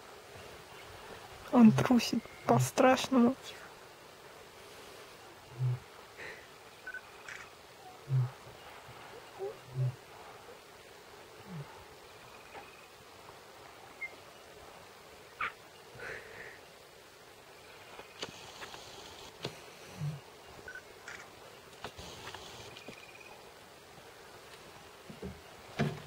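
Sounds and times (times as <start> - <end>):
lioness low call: 5.4 - 6.0, 7.8 - 10.6
lioness grunting: 5.4 - 6.4, 7.8 - 8.5, 9.2 - 10.2, 11.4 - 11.8, 19.9 - 20.3
faint clicks: 7.2 - 7.5, 17.9 - 19.7, 21.0 - 23.2.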